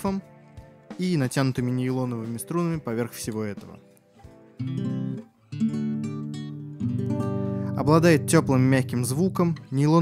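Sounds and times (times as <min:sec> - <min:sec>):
nylon-string guitar chords strummed: 0:04.3 - 0:10.0.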